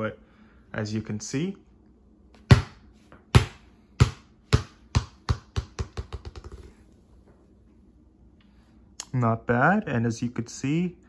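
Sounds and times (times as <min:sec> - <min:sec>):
football bouncing on hardwood floor: 0:02.4 - 0:06.7.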